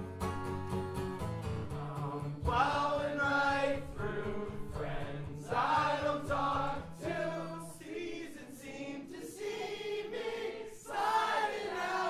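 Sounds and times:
strummed acoustic guitar: 0.0 - 7.7
man singing into a mic: 1.8 - 6.6
voices singing along: 2.0 - 12.0.

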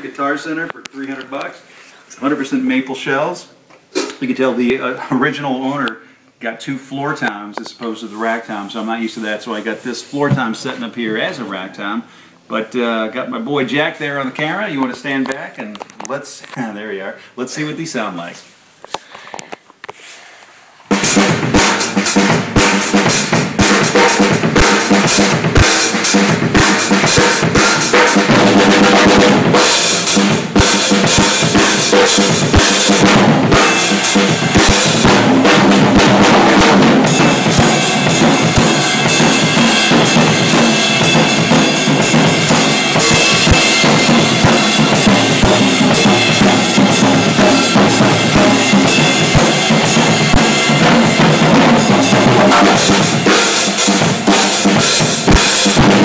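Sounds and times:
drum kit groove: 3.8 - 4.9, 7.8 - 11.4, 20.9 - 56.0
cymbals washing: 21.0 - 56.0.

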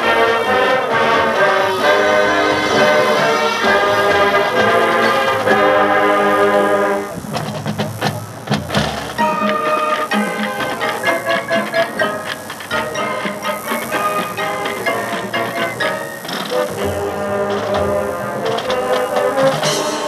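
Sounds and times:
marching band playing: 0.0 - 20.0.

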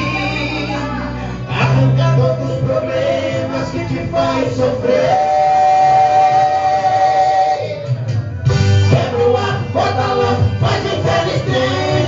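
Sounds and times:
gospel song with band: 0.0 - 12.0.

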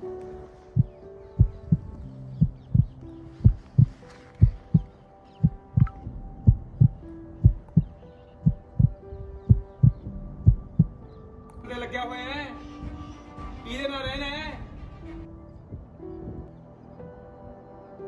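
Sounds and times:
held music chords: 0.0 - 18.0
heartbeat thumps: 0.7 - 11.0, 15.7 - 16.6.

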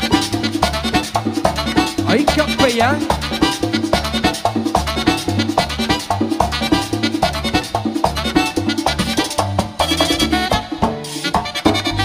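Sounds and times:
congas: 0.0 - 12.0
electric bass: 0.0 - 12.0
tambora drum: 0.0 - 12.0.

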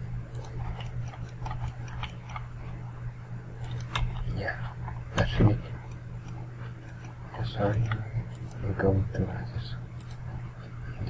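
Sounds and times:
steady low hum: 0.0 - 11.0
mouse clicks and scroll ticks: 0.3 - 2.5, 3.6 - 4.1, 5.8 - 8.6, 10.0 - 10.2.

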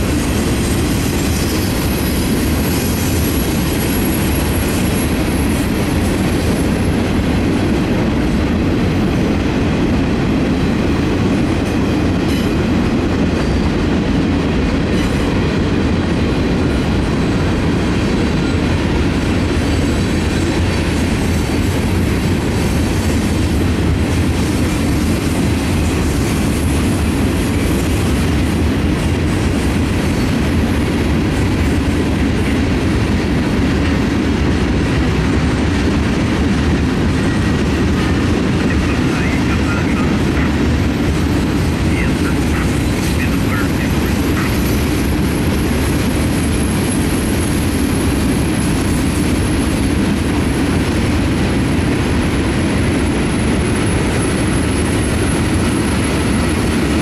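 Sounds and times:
freight cars rolling on rails: 0.0 - 57.0.

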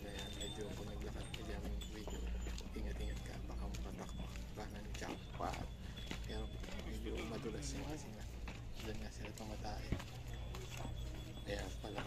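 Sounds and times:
hooves clip-clopping on stone: 0.0 - 12.0
people talking: 0.0 - 12.0.

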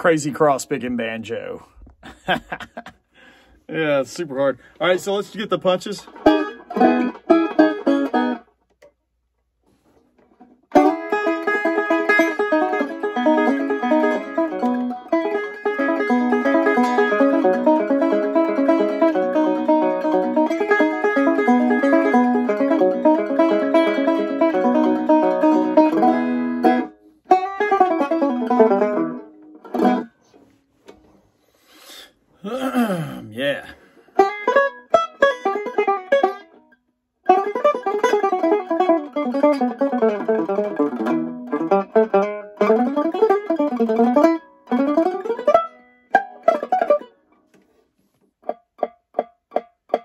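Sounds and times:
banjo picking fast runs: 3.8 - 8.5, 10.7 - 30.1, 34.2 - 36.6, 37.3 - 47.1, 48.4 - 50.0.

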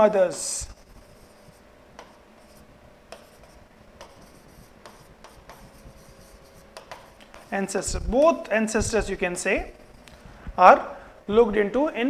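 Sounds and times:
faint steady hum: 0.0 - 12.0
marker pen writing on board: 0.6 - 8.2, 8.8 - 10.1.

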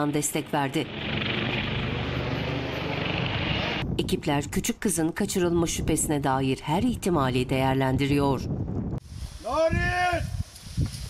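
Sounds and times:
helicopter rotor and engine: 0.0 - 3.8.

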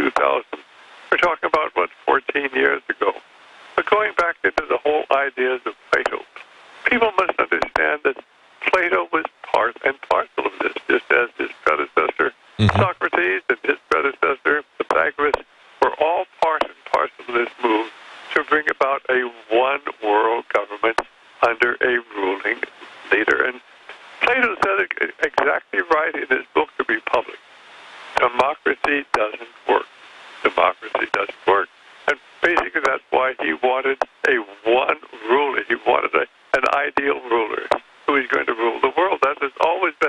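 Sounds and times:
person talking over phone: 0.0 - 0.6, 3.8 - 23.6, 24.2 - 27.4, 28.2 - 29.8, 30.5 - 31.7, 32.4 - 40.0
telephone-like radio speech: 9.0 - 19.0.

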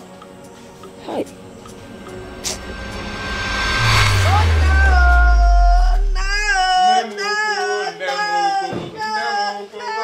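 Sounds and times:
whoosh effect: 1.2 - 6.8
deep bass note: 1.3 - 6.8.

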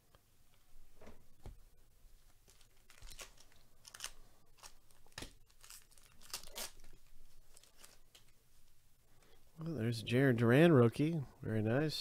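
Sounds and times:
foil wrapper tearing and crinkling: 2.5 - 8.3.

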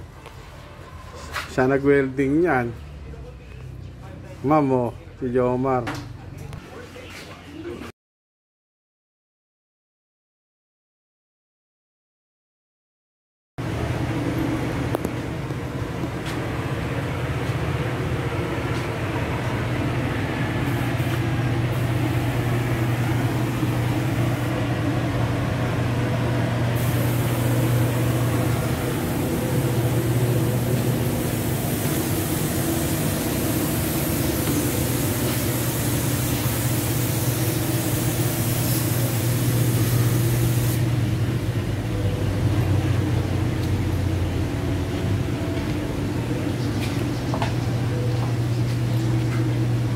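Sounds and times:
motor humming: 20.0 - 36.7
bright hiss: 26.8 - 40.8.

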